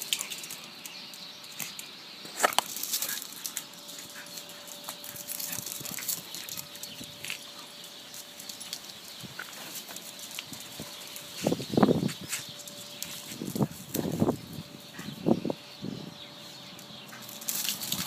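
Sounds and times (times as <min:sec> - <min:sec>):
dogs playing: 0:00.0 - 0:15.7, 0:16.6 - 0:18.0.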